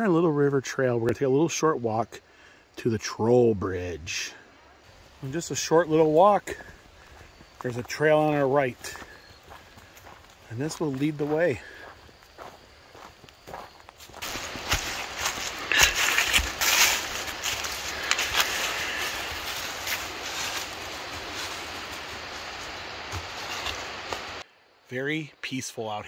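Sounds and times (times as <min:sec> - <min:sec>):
footsteps on leafy dirt trail: 0:04.9 - 0:24.4.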